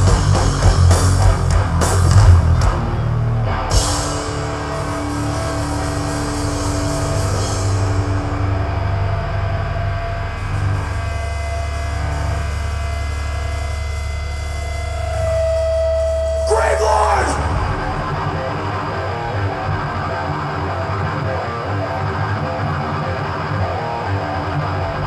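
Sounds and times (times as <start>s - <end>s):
metal band electric guitars and bass: 0.0s - 25.0s
strummed guitar and cymbal burst: 0.0s - 25.0s.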